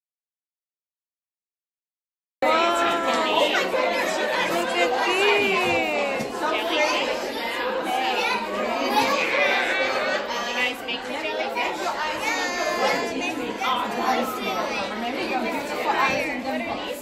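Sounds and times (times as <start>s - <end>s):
children and adults talking: 2.4s - 17.0s.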